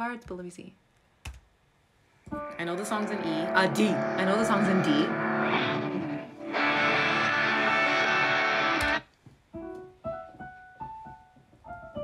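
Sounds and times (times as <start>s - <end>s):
electric guitar solo: 2.4s - 9.0s.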